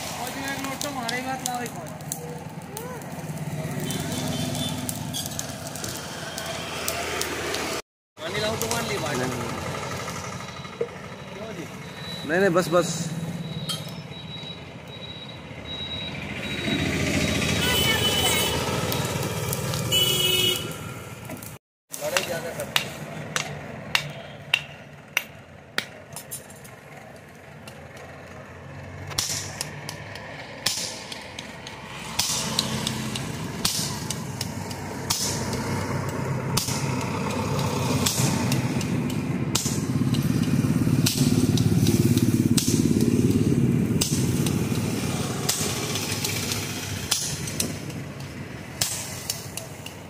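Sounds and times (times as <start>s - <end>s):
vehicle engine running: 8.2s - 13.8s, 24.9s - 50.0s.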